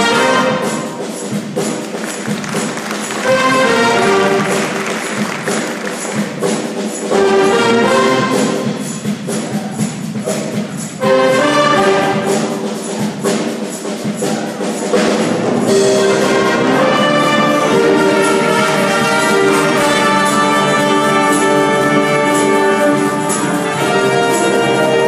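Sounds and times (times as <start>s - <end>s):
brass band playing chords: 0.0s - 25.0s
drum and cymbal strokes: 0.0s - 25.0s.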